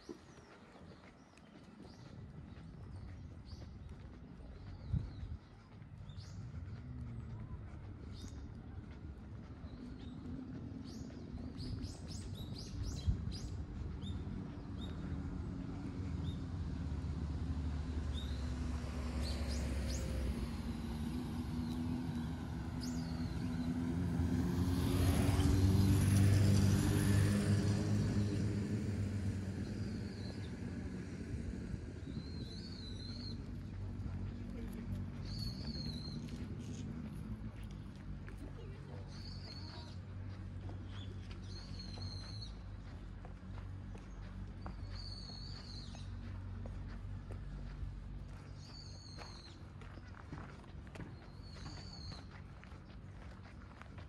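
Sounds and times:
small birds chirping: 0:00.0 - 0:17.1, 0:17.8 - 0:53.8
vehicle passing on road: 0:00.0 - 0:54.0.

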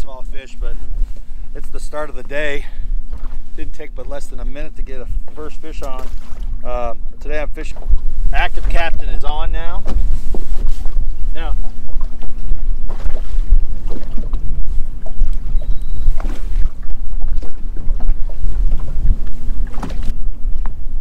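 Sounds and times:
water lapping against boat hull: 0:00.0 - 0:21.0
wind buffeting microphone: 0:00.0 - 0:21.0.

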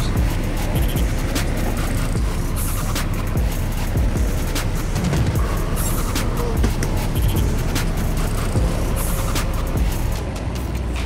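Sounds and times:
forklift engine running: 0:00.0 - 0:11.0
music playing: 0:00.0 - 0:11.0.

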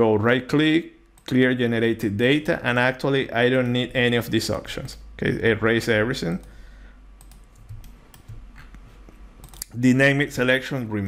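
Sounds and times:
steady low hum: 0:00.0 - 0:11.0
computer mouse and key clicks: 0:07.2 - 0:09.8.

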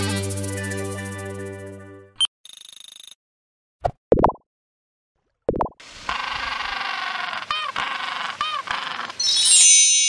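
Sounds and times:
penguin calling: 0:06.1 - 0:09.2.

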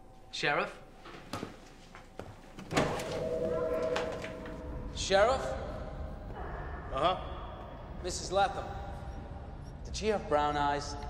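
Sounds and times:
ringing tone: 0:02.8 - 0:06.0.

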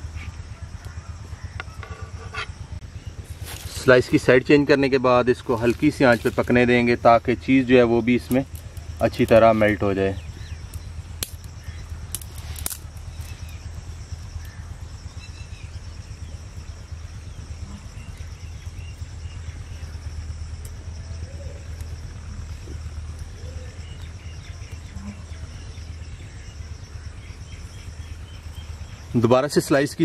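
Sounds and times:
faint bird calls: 0:00.0 - 0:29.3
low rumble: 0:00.0 - 0:29.3
high-pitched insect hum: 0:00.0 - 0:30.0
sharp clicks: 0:10.4 - 0:13.6.

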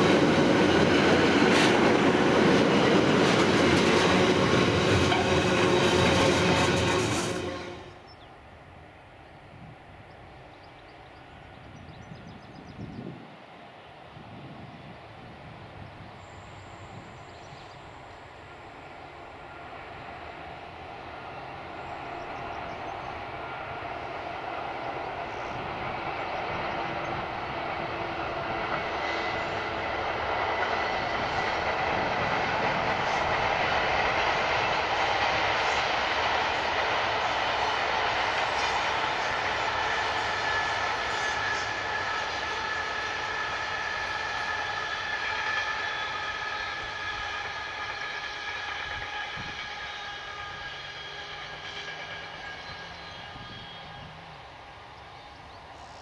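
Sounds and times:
diesel locomotive engine under power: 0:00.0 - 0:08.1, 0:15.5 - 0:56.0.

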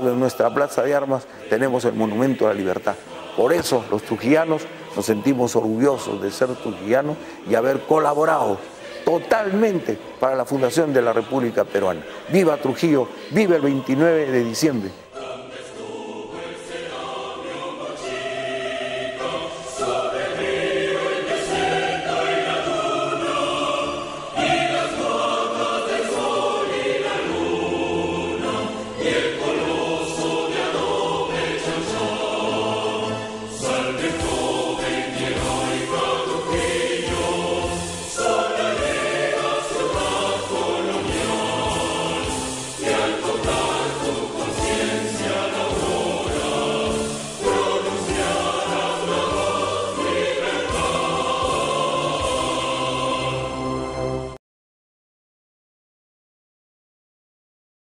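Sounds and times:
choir singing: 0:00.0 - 0:54.4.

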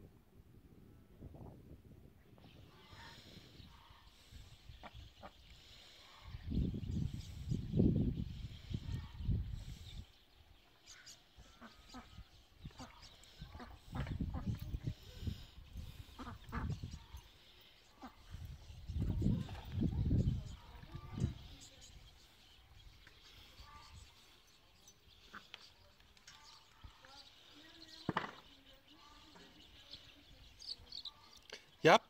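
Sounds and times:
wind gusts on microphone: 0:00.0 - 0:10.6, 0:11.9 - 0:17.3, 0:18.0 - 0:24.2
ducks quacking: 0:02.7 - 0:06.4, 0:10.9 - 0:17.3, 0:17.9 - 0:18.5, 0:25.2 - 0:25.7.

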